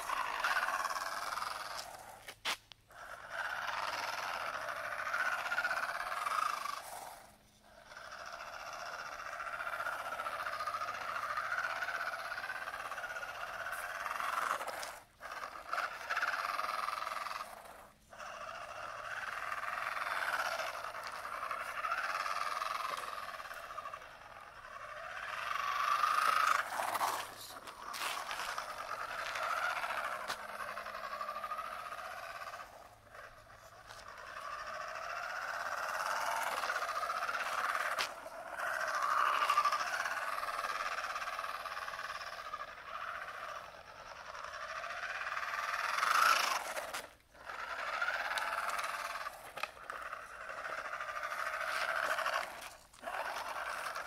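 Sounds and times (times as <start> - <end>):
toy car electric motor whining: 0.0 - 54.0.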